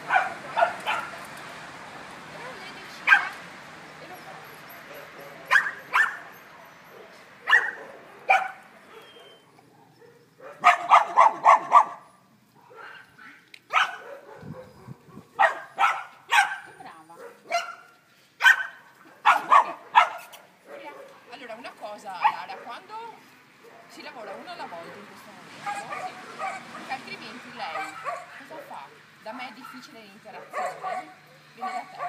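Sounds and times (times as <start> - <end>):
dogs barking: 0.0 - 1.3, 2.4 - 3.4, 4.2 - 32.0.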